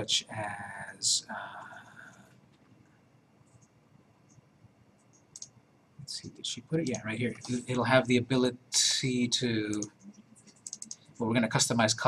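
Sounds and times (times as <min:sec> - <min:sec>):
faint computer mouse clicks: 0:03.5 - 0:04.4, 0:05.0 - 0:05.6, 0:09.7 - 0:11.1.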